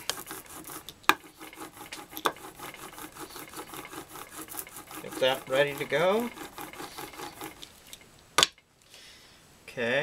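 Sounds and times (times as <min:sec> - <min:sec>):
ink roller rolling through ink: 0:00.0 - 0:08.0.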